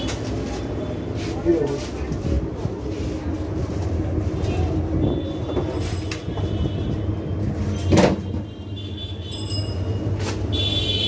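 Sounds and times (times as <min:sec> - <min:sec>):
murmur of background noise: 0:00.0 - 0:10.9.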